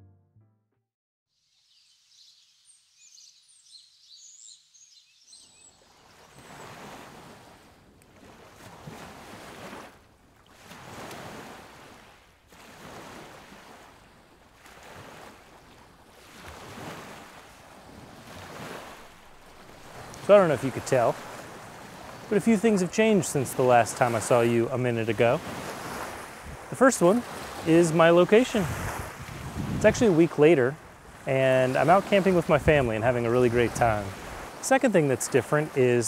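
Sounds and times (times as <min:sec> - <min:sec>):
faint high bird chirps: 0:01.5 - 0:06.6
rushing outdoor noise: 0:16.5 - 0:36.0.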